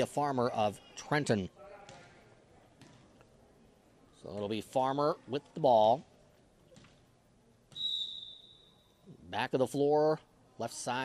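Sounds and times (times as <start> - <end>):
referee's whistle: 7.7 - 9.0.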